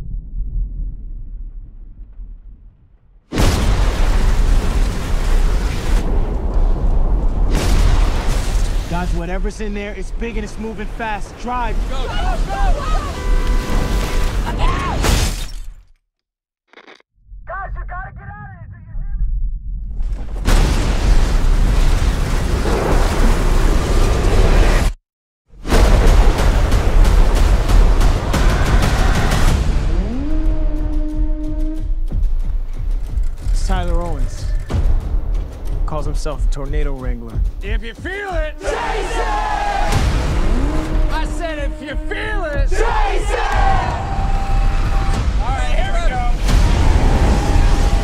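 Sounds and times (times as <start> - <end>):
booming hits: 0.0 - 9.4, 19.3 - 23.9, 25.6 - 32.9, 37.4 - 48.0
storm roar: 25.6 - 31.2, 38.6 - 48.0
trailer music: 25.6 - 48.0.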